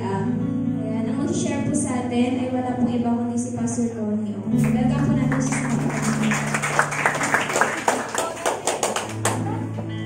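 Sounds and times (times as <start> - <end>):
audience clapping: 4.6 - 9.7.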